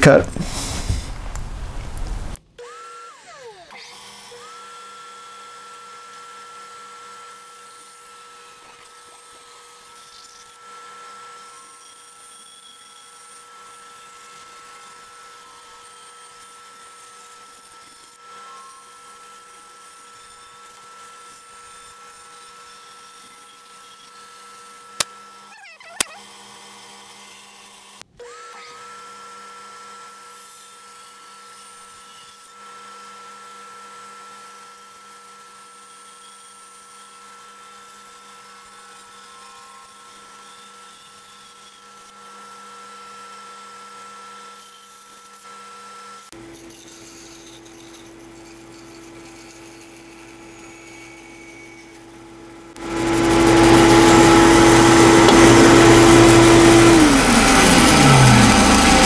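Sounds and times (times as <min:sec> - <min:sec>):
bandsaw whining: 0:00.0 - 0:42.8, 0:44.2 - 0:59.0.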